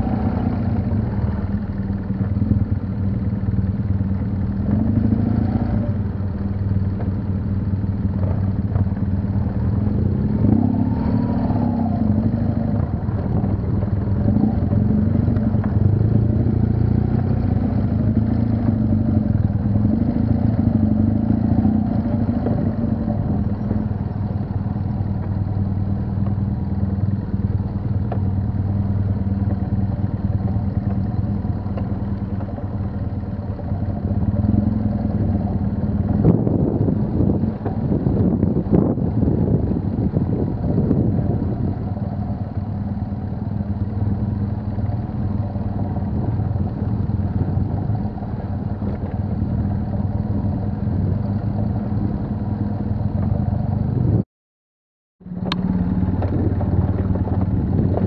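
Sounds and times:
motorcycle engine at low revs: 0.0s - 54.2s, 55.2s - 58.0s.

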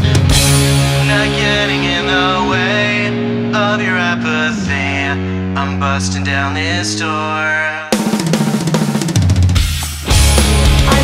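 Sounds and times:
drum kit break: 0.0s - 3.8s, 7.9s - 11.0s
bass guitar: 0.0s - 8.0s, 9.4s - 11.0s
person singing: 0.0s - 8.2s, 10.2s - 11.0s.

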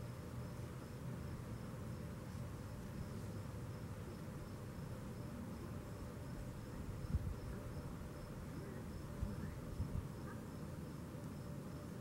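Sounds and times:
cricket chirping: 0.0s - 12.0s
low outdoor rumble: 0.0s - 12.0s.

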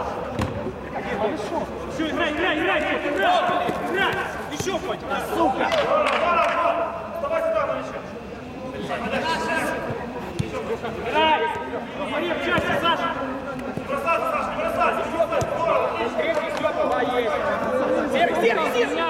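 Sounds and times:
men calling and talking: 0.0s - 19.0s
football being kicked: 3.3s - 5.0s, 9.8s - 10.6s, 15.4s - 15.6s.

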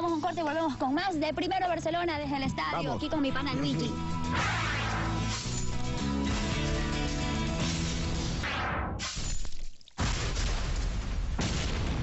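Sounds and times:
ident music: 0.0s - 8.5s.

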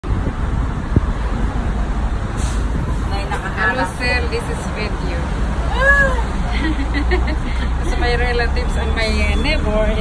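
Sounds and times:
tram running with low rumble: 0.0s - 10.0s
voices: 3.1s - 10.0s.

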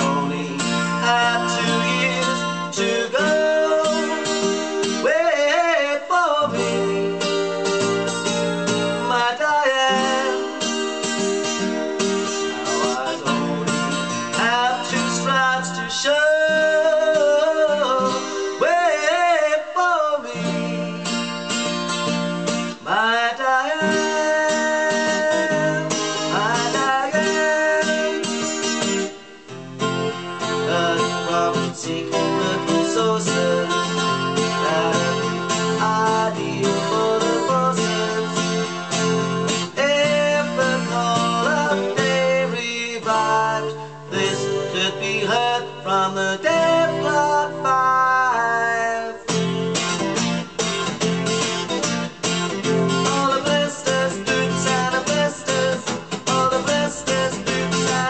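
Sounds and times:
acoustic guitar strumming: 0.0s - 58.0s
man singing: 0.0s - 58.0s.

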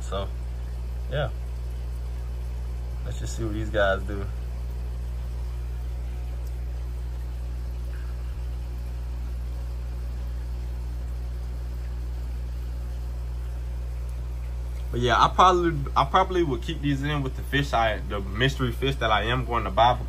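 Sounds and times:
aquarium equipment humming: 0.0s - 20.0s
bubbling water: 0.0s - 20.0s.

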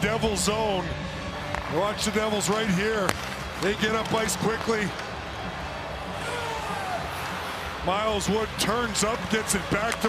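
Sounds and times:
arena background rush: 0.0s - 10.0s.

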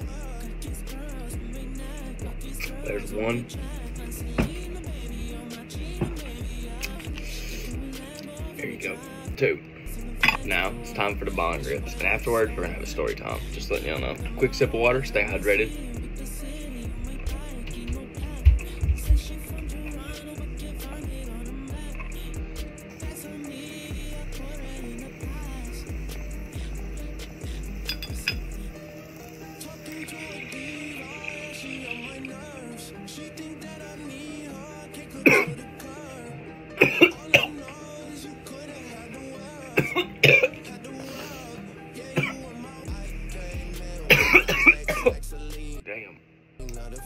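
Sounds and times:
music with bass beat: 0.0s - 8.6s, 9.9s - 28.8s, 42.9s - 45.8s, 46.6s - 47.0s
person coughing: 35.2s - 35.6s, 36.8s - 37.6s, 39.8s - 40.7s, 42.2s - 42.4s, 44.1s - 45.2s.

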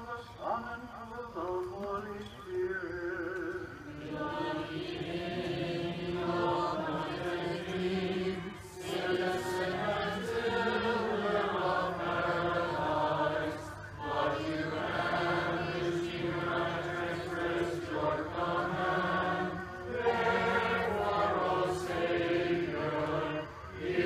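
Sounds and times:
congregation chanting: 0.0s - 24.0s.

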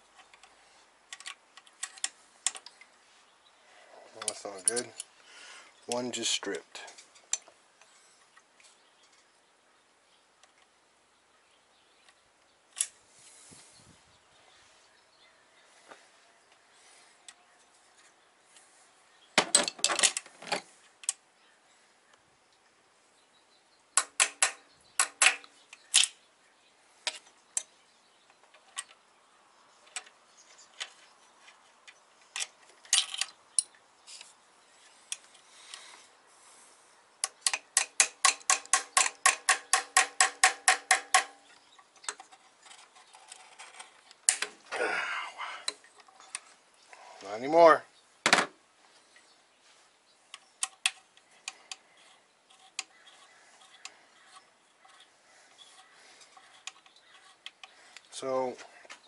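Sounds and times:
metal clinks of tools and bolts: 4.2s - 5.1s.

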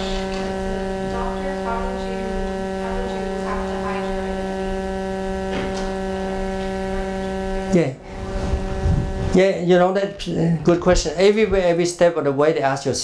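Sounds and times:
close voice: 0.0s - 4.7s, 6.3s - 8.5s
electrical mains hum: 0.0s - 13.0s.

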